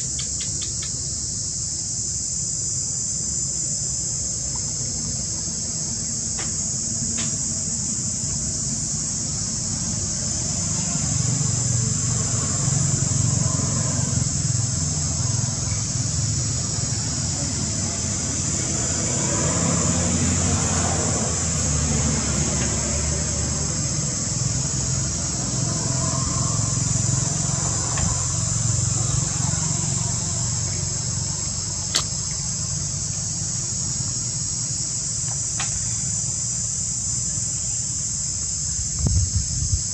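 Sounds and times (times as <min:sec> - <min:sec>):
sharp click: 0:00.0 - 0:01.0, 0:31.9 - 0:32.2
high-pitched insect drone: 0:00.0 - 0:39.9.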